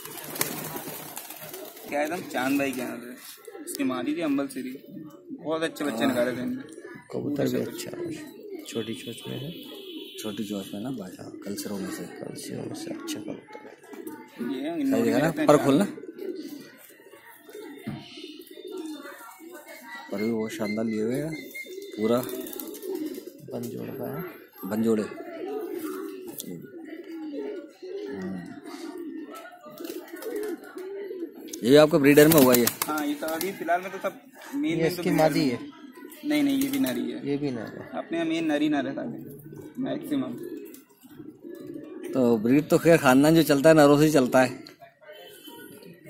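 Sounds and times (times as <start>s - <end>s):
pigeons cooing: 0.0s - 46.0s.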